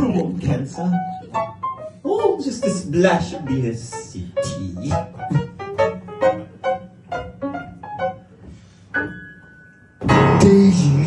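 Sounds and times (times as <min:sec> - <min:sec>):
solo piano notes: 0:00.0 - 0:11.0.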